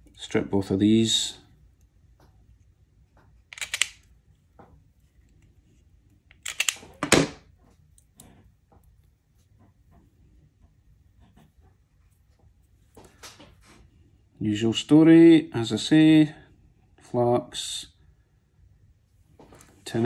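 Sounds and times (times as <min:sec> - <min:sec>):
faint handling clicks: 0:03.5 - 0:04.1.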